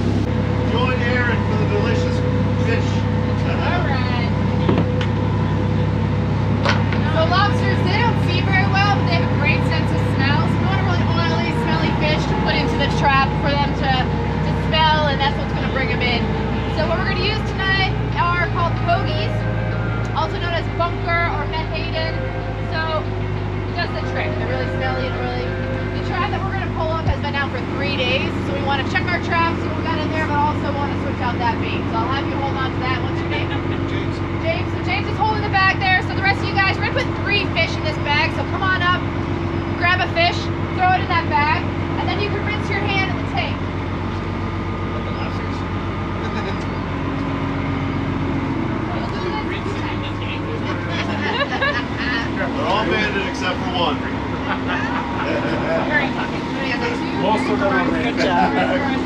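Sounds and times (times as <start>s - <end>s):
boat engine running: 0.0s - 59.0s
person talking: 54.5s - 59.0s.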